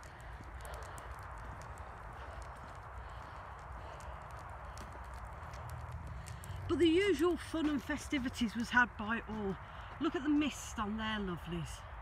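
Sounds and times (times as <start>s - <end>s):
footsteps on wet tarmac: 0.0s - 11.4s.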